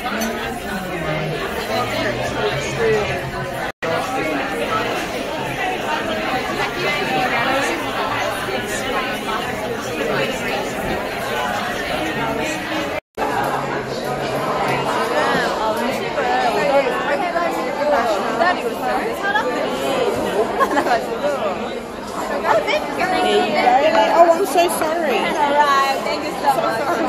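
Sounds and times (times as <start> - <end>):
crowd chatter in restaurant: 0.0 - 27.0.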